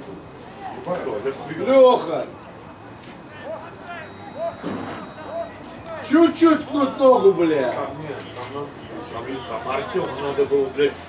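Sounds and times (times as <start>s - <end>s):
distant shouts of players: 0.4s - 10.9s.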